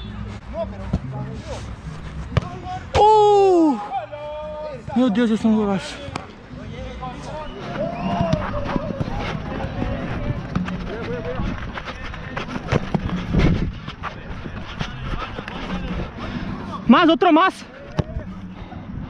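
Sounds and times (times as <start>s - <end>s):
footsteps on artificial turf: 0.0s - 2.8s, 7.1s - 17.3s
players calling out: 6.8s - 12.7s.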